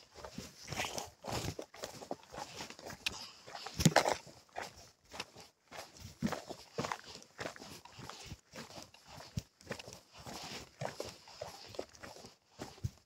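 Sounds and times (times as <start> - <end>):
footsteps on rocky dirt trail: 0.0 - 13.0.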